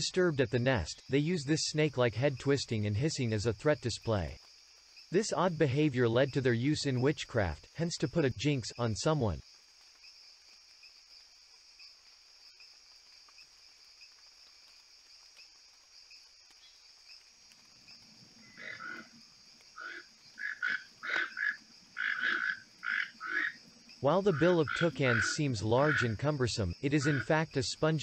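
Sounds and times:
faint background hiss: 0:00.0 - 0:28.0
bird repeated calls: 0:18.4 - 0:19.2, 0:19.8 - 0:26.2, 0:26.9 - 0:27.4.

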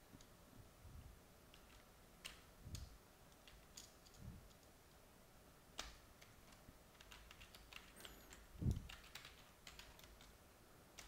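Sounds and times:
typing on keyboard: 0:01.5 - 0:04.7, 0:05.8 - 0:11.0.

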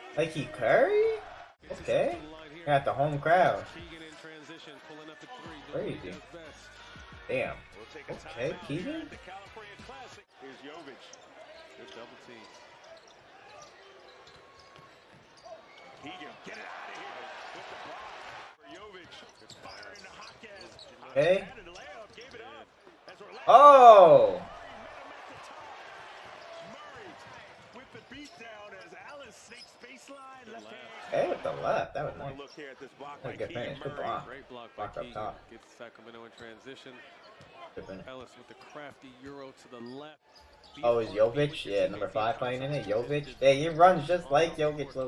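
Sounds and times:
arena crowd noise: 0:00.0 - 0:45.0
sneakers squeaking: 0:08.1 - 0:18.3, 0:18.9 - 0:34.3, 0:39.8 - 0:45.0
arena crowd murmur: 0:21.1 - 0:28.7.

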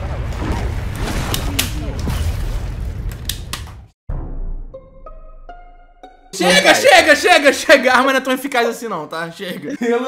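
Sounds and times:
voice: 0:01.4 - 0:02.1, 0:06.4 - 0:10.0.

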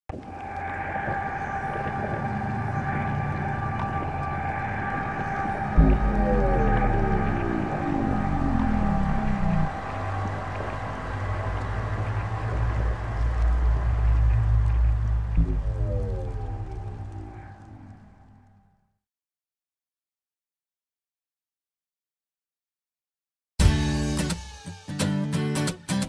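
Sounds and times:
low bass hum: 0:00.1 - 0:18.6
falling synth sweep: 0:00.2 - 0:18.6
deep boom: 0:00.6 - 0:17.6
high electronic tones: 0:02.2 - 0:10.0.

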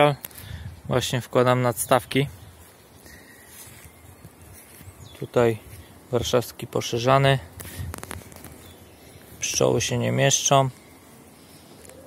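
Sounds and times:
honeybees humming: 0:01.4 - 0:12.0.

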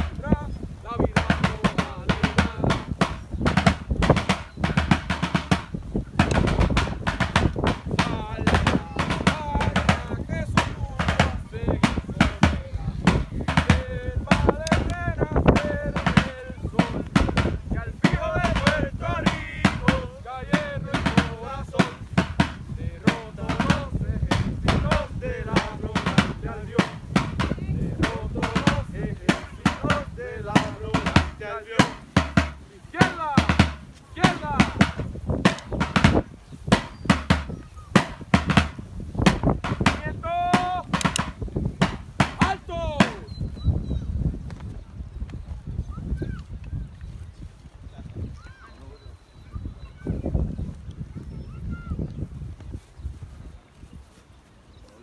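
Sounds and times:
field drum marching cadence: 0:00.0 - 0:43.5
voices talking: 0:00.0 - 0:44.1, 0:47.5 - 0:55.0.

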